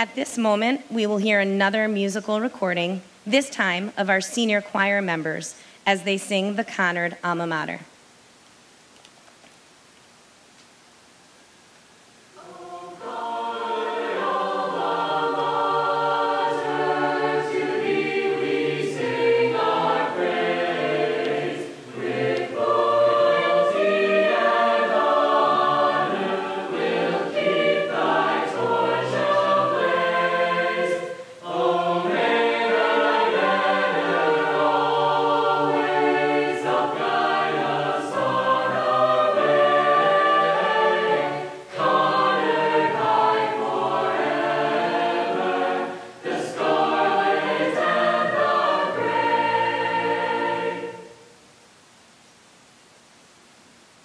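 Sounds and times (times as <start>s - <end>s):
choir singing held chords: 12.3s - 51.5s.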